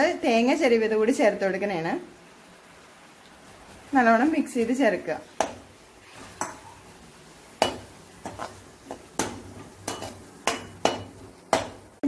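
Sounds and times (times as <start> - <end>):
metal spatula scraping and knocking pan: 5.4 - 6.7, 7.6 - 11.9.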